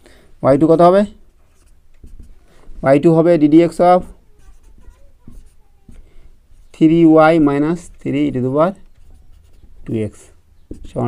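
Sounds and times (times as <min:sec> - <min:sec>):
pen scratching on paper: 0:01.5 - 0:02.4, 0:03.9 - 0:07.0, 0:08.7 - 0:09.9, 0:10.6 - 0:11.0.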